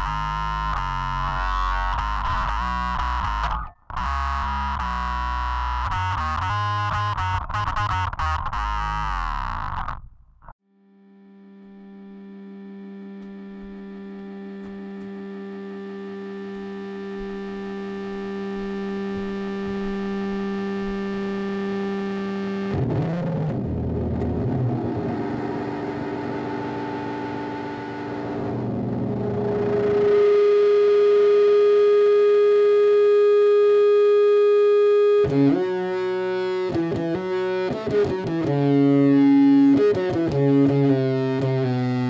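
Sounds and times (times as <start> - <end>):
distorted electric guitar: 0.0 - 10.2, 10.9 - 42.0.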